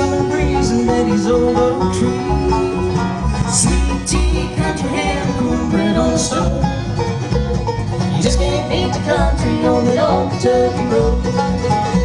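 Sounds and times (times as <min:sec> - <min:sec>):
acoustic guitar: 0:00.0 - 0:12.0
banjo: 0:00.0 - 0:12.0
upright bass: 0:00.0 - 0:12.0.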